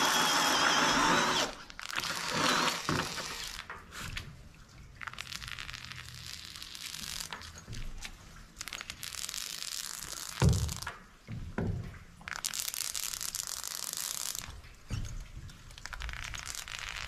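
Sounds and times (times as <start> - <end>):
foam gun hissing: 0.0 - 3.5.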